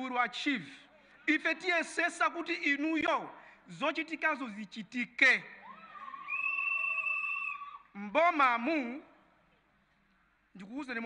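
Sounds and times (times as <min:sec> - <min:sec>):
high-pitched wavering cry: 0:05.7 - 0:07.9.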